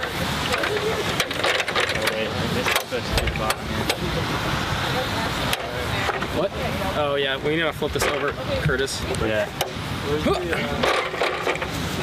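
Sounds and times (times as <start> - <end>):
people talking outdoors: 0.0 - 12.0
steady background noise: 0.0 - 12.0
sharp knocks and clatter: 10.8 - 11.8.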